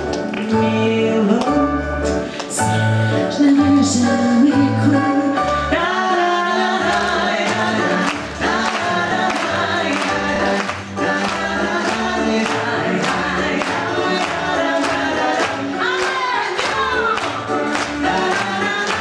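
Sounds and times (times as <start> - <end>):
backing music with steady beat: 0.0 - 19.0
man and woman singing duet: 0.3 - 19.0.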